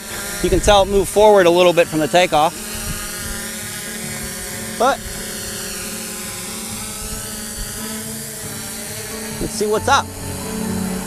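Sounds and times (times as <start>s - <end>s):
drone propellers whining: 0.0s - 11.0s.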